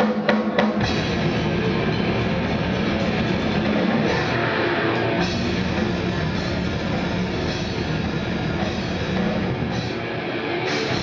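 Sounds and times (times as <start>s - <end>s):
drum hits: 0.0s - 10.0s
grindcore band playing live: 0.0s - 11.0s.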